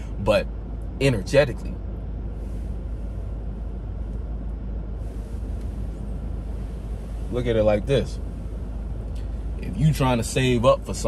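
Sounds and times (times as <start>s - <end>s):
car engine drone inside cabin: 0.0s - 11.0s.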